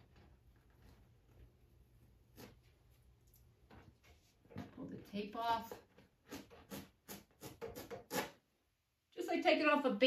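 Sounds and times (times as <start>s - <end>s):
tape peeling off canvas: 0.5s - 3.4s, 6.2s - 8.4s.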